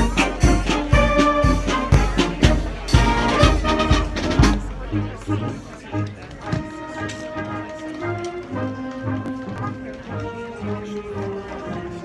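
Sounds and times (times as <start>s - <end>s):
steady marching drum beat: 0.0s - 11.8s
brass horns holding chords: 0.0s - 12.0s.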